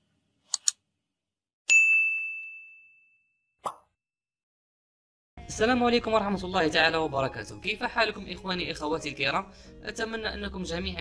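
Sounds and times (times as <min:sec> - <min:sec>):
high bell ding: 0:01.7 - 0:03.4.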